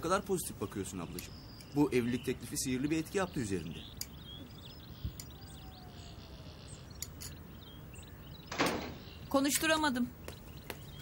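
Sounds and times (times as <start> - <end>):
faint bird chirps: 0.0 - 11.0
light taps: 9.5 - 11.0.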